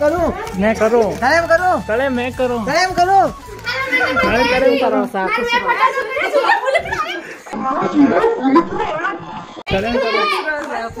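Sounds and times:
people talking and calling: 0:00.0 - 0:11.0
children's voices: 0:03.5 - 0:11.0.

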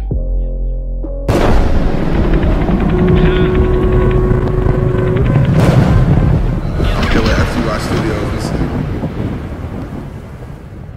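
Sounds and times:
deep thunder-like rumble: 0:01.3 - 0:10.9.

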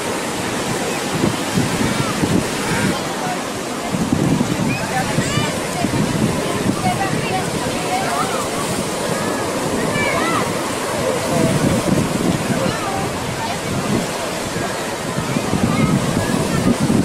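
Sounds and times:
ocean surf on rocks: 0:00.0 - 0:17.0.

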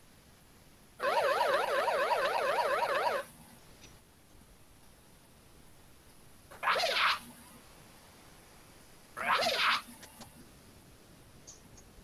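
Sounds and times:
warbling electronic tone: 0:01.0 - 0:03.3.

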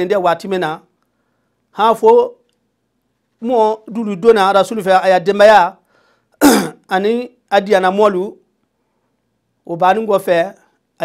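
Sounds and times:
man talking: 0:00.0 - 0:00.8, 0:01.8 - 0:02.4, 0:03.4 - 0:05.8, 0:09.7 - 0:10.6
man clearing throat: 0:06.4 - 0:06.8.

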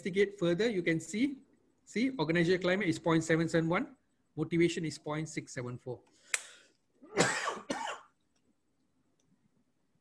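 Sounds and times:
man coughing: 0:07.0 - 0:08.1.

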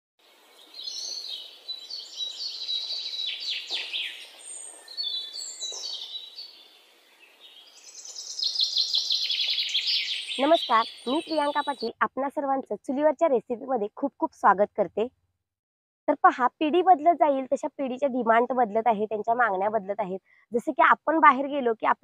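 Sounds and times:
birds chirping and calling: 0:00.5 - 0:12.0.

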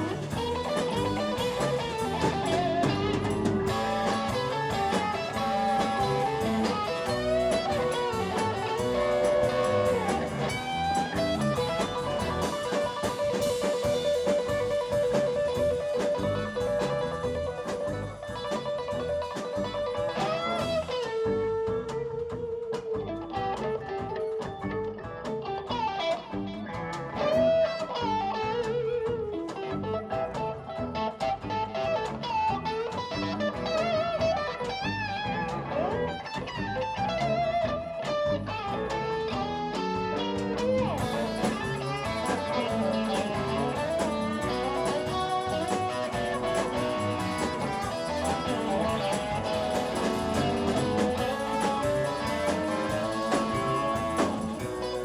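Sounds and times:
bass: 0:00.0 - 0:55.0
drums: 0:00.0 - 0:55.0
electric guitar bent notes: 0:00.0 - 0:55.0.

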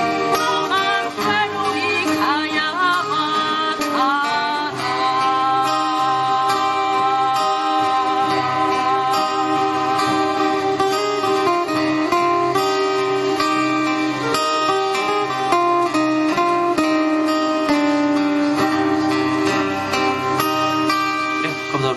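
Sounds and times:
acoustic guitars playing: 0:00.0 - 0:21.9.

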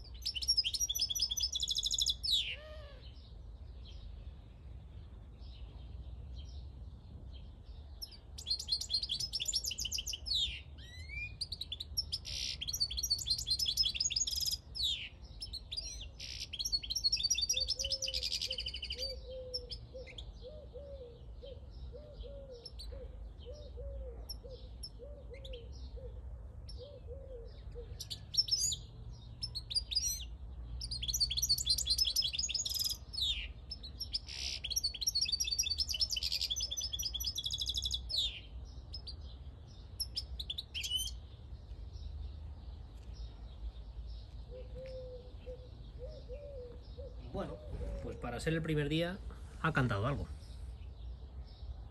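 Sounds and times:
goldfinch twittering song: 0:00.0 - 0:03.2, 0:08.0 - 0:20.4, 0:28.0 - 0:42.2.

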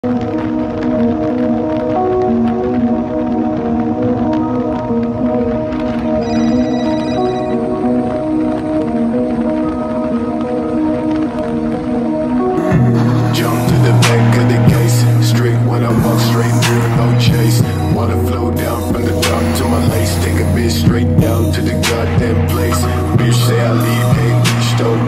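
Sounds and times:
slow held chords music: 0:00.0 - 0:25.0.

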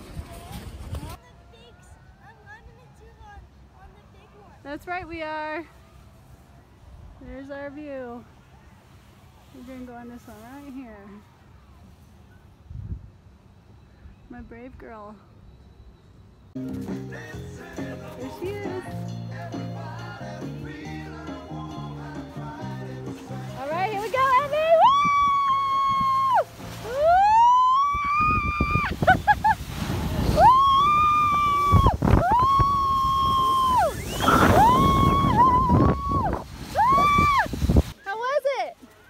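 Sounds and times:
music: 0:16.6 - 0:24.7
rushing rumble of sliding tube: 0:22.3 - 0:38.0.

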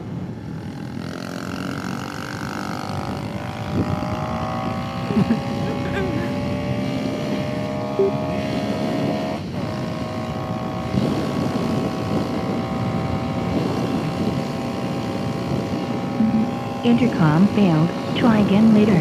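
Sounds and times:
wind rush on microphone: 0:00.0 - 0:07.8, 0:08.4 - 0:19.0
motorcycle engine accelerating: 0:00.0 - 0:19.0.

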